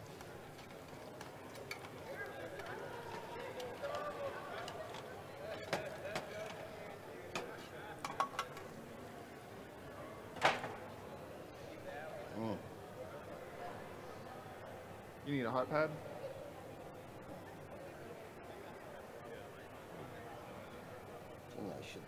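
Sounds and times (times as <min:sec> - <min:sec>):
background chatter: 0:00.0 - 0:22.0.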